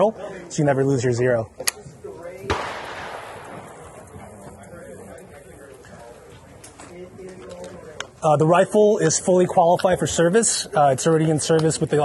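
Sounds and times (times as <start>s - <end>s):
gunshot with echo: 2.5s - 4.4s.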